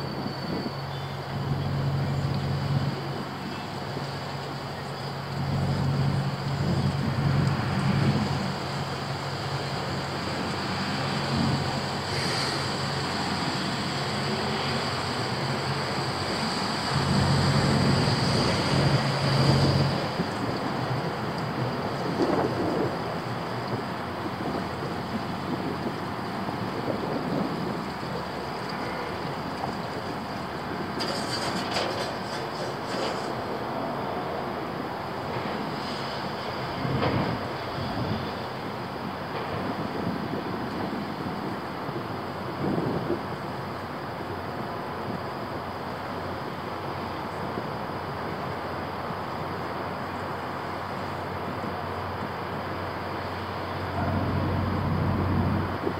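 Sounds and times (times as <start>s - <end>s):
outdoor rumble: 0.0s - 33.5s, 50.2s - 55.9s
wind on microphone: 5.2s - 33.1s, 36.8s - 43.8s, 53.6s - 55.9s.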